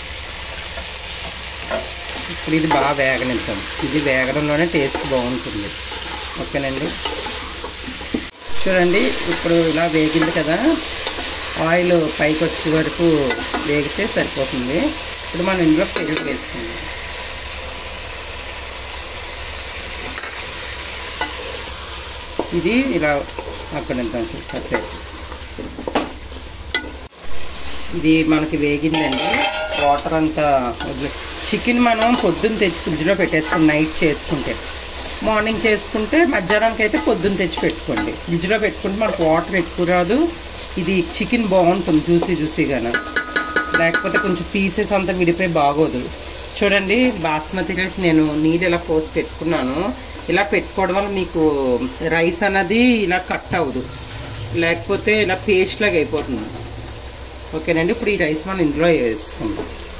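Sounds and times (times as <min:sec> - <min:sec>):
chicken sizzling in a pan: 0:00.0 - 0:59.9
person talking: 0:02.3 - 0:05.8, 0:06.4 - 0:07.0, 0:08.5 - 0:16.8, 0:22.5 - 0:24.8, 0:27.8 - 0:34.6, 0:35.2 - 0:43.0, 0:43.7 - 0:56.7, 0:57.5 - 0:59.7
wooden spatula scraping pot: 0:04.8 - 0:08.3.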